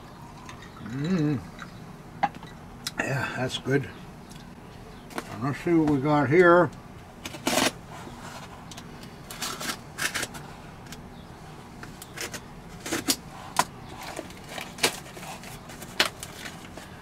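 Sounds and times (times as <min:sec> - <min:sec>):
cardboard crinkling: 0:13.9 - 0:17.0.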